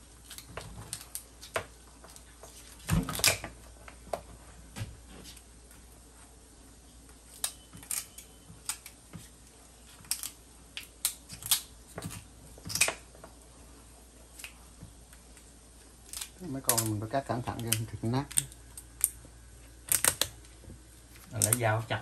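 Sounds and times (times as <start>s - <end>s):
shears snipping through shell: 19.9s - 20.3s.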